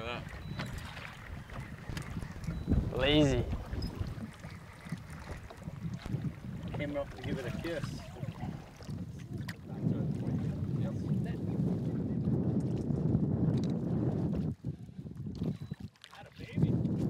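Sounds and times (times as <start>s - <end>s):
water slapping boat hull: 0.0s - 17.0s
wind buffeting microphone: 0.0s - 17.0s.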